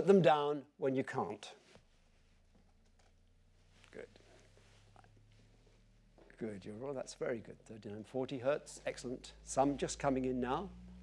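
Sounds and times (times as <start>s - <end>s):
low test tone sweep: 8.2s - 11.0s.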